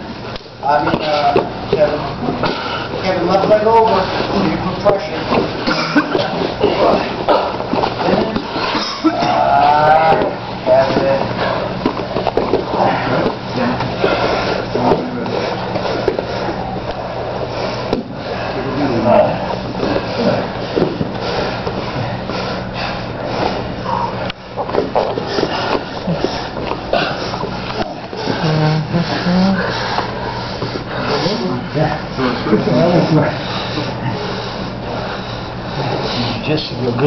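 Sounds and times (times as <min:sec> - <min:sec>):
scuffling and rustling on mats: 0:00.0 - 0:37.0
steady low hum: 0:00.0 - 0:37.0
indistinct voices: 0:00.6 - 0:37.0.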